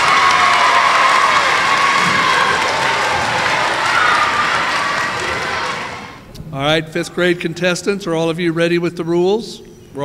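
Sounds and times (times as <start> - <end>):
audience applauding: 0.0 - 6.2
people cheering: 0.0 - 6.2.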